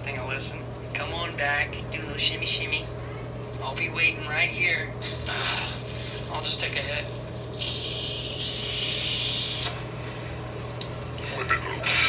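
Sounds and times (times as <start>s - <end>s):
aerosol can spraying: 7.6s - 9.7s.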